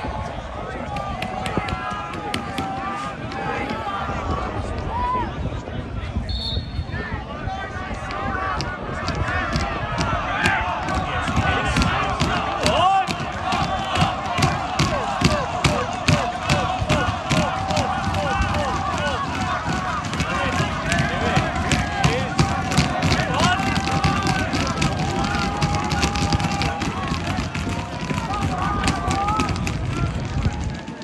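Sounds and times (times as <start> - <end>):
crowd shouting and chanting: 0.0 - 31.0
rhythmic hand claps: 9.2 - 31.0.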